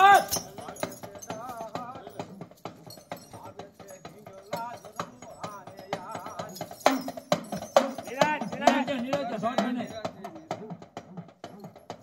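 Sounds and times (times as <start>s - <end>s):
drum beaten in sharp knocks: 5.9s - 12.0s
person singing: 8.0s - 11.9s.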